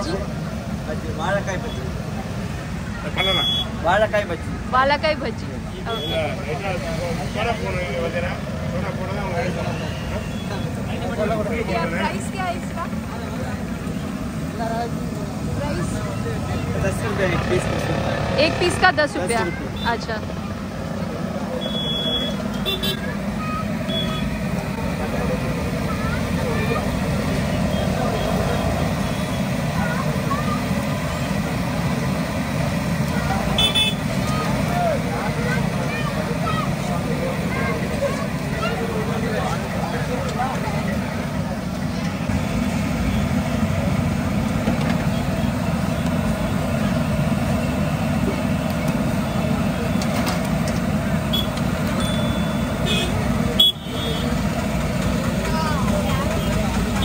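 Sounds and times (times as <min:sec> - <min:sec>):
crowd chatter: 0:00.0 - 0:57.0
traffic rumble: 0:00.0 - 0:57.0
short high beeps: 0:21.6 - 0:22.4, 0:52.0 - 0:52.7.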